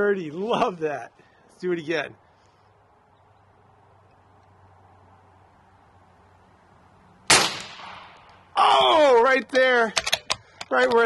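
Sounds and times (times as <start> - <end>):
air rifle shot: 7.3 - 8.3.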